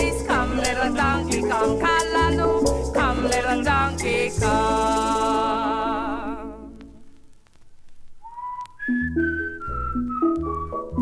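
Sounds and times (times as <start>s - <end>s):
whistled melody: 8.2s - 11.0s.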